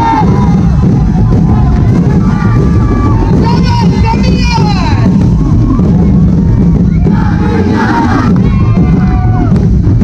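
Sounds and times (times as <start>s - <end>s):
percussion band drumming: 0.0s - 10.0s
crowd shouting a chant: 6.9s - 9.6s.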